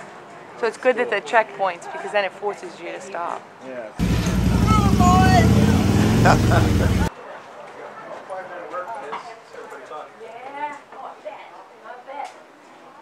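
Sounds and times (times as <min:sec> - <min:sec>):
mechanical horse ride rumble: 0:04.0 - 0:07.1.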